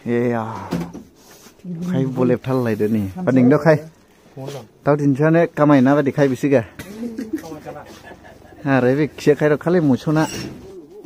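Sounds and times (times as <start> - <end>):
men talking: 1.7 - 11.0.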